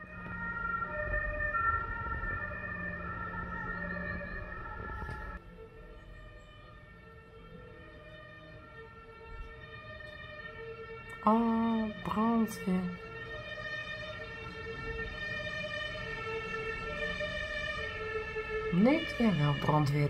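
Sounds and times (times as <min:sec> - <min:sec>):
fire engine siren: 0:00.0 - 0:20.0.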